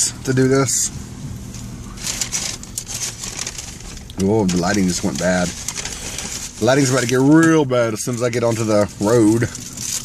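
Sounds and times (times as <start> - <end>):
idling car hum: 0.0 - 10.0
crinkling and rustling: 1.4 - 10.0.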